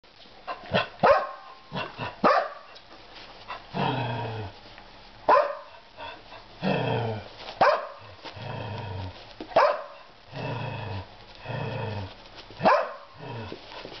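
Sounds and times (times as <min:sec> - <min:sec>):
dogs barking: 0:00.5 - 0:02.7, 0:05.3 - 0:05.8, 0:07.6 - 0:08.1, 0:09.6 - 0:10.1, 0:12.6 - 0:13.2
dogs play growling: 0:01.6 - 0:02.2, 0:03.0 - 0:04.9, 0:05.7 - 0:14.0.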